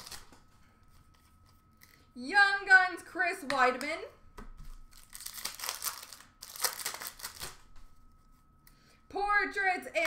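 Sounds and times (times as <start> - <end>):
trading cards rustling: 0.0 - 2.1, 4.7 - 7.6.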